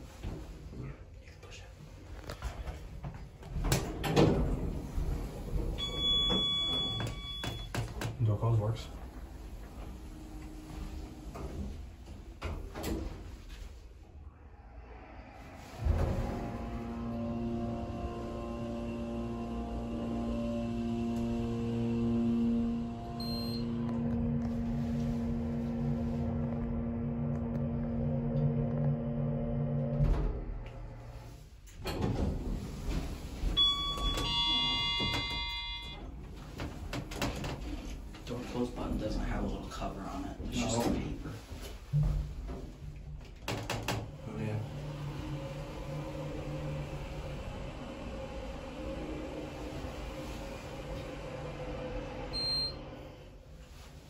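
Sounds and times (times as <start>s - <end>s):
elevator machinery hum: 2.5s - 41.6s, 42.7s - 54.0s.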